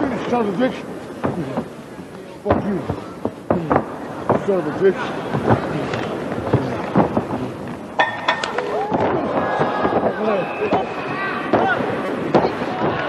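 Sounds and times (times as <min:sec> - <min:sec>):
voices shouting: 0:02.4 - 0:13.0.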